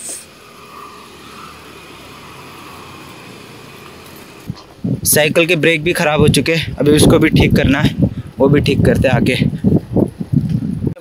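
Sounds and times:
bicycle tyres rolling on road: 0.0s - 11.0s
wind noise on microphone: 3.2s - 11.0s.

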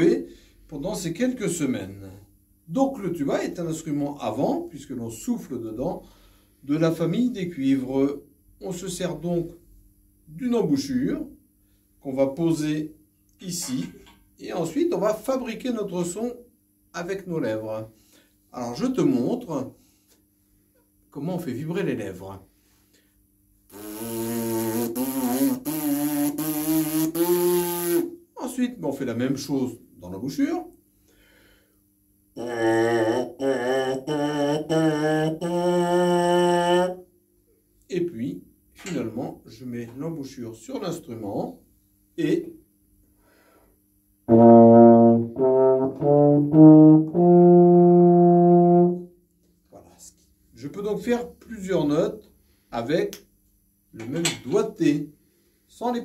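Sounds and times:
lip buzzing notes: 23.7s - 28.2s, 32.4s - 37.1s, 44.3s - 49.1s
tuba notes stepping upward: 44.3s - 49.1s.

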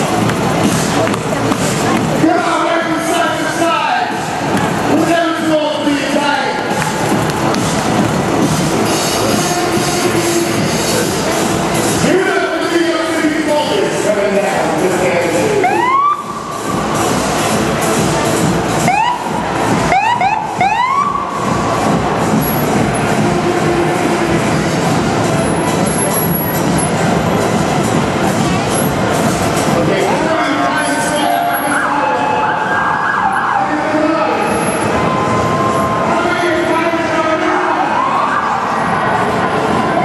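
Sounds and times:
crowd din: 0.0s - 40.0s
siren whoop: 15.6s - 16.5s, 18.9s - 21.4s, 31.2s - 36.1s, 37.8s - 38.9s.

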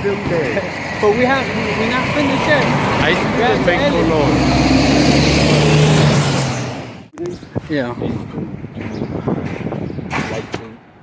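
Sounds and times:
vehicle engine humming: 0.0s - 7.4s.

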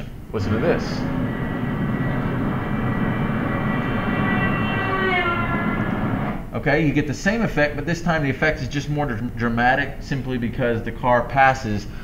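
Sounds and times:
car horn sounding: 3.7s - 6.4s.

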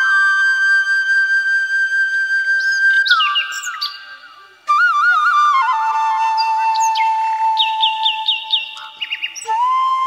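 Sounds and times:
bamboo flute long note: 0.0s - 10.0s
birds chirping: 2.6s - 4.7s, 6.3s - 9.7s.

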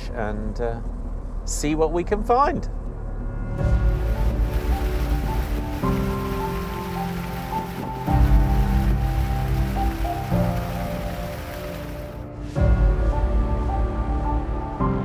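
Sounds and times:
sustained music chords: 3.4s - 14.8s.

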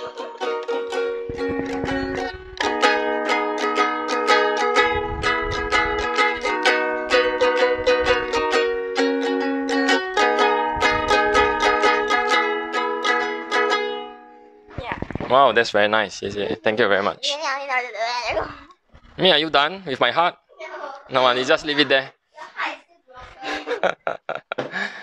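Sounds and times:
ukulele strumming: 0.0s - 15.5s
low dull thumping: 0.9s - 13.2s, 14.7s - 15.6s.

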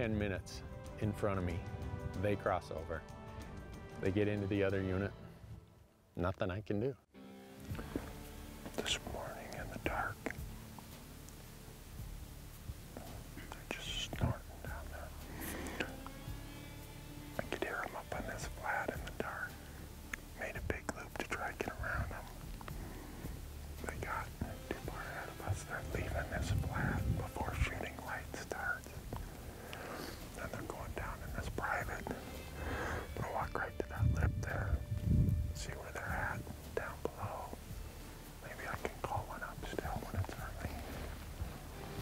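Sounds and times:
man whispering: 8.7s - 10.5s, 12.9s - 16.1s, 17.4s - 22.9s, 23.8s - 37.7s, 38.3s - 41.6s.

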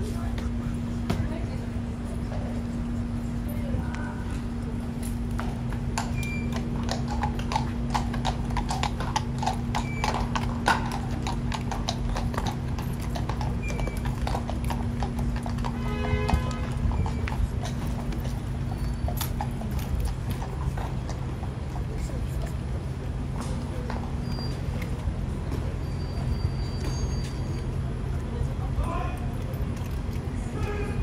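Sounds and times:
horse hooves clip-clopping on stone: 0.0s - 31.0s.

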